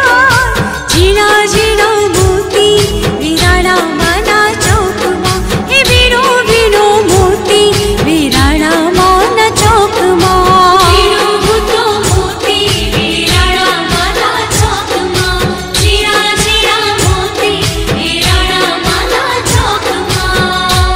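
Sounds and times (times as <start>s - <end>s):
backing track with drum beat: 0.0s - 20.9s
woman singing: 0.0s - 20.9s.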